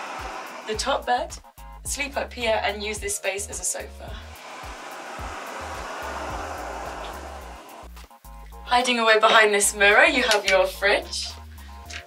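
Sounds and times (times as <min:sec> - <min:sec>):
bunk bed mechanism hissing: 0:00.0 - 0:00.8, 0:04.3 - 0:07.9
background music: 0:00.0 - 0:12.0.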